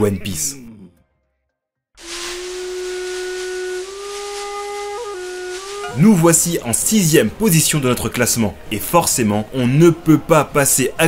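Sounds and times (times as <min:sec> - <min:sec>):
breathy flute note: 0:02.0 - 0:06.4.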